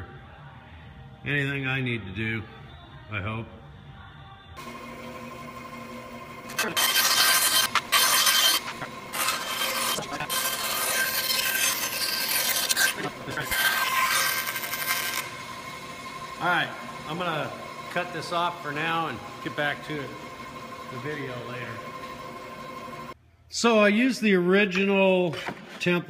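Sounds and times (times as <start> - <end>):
bandsaw cutting workpiece: 4.6 - 23.2
bandsaw motor hum: 4.6 - 23.2.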